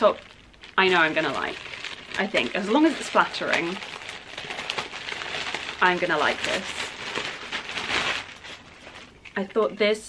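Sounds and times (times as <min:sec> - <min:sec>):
packaging rustling and crinkling: 0:00.0 - 0:09.4.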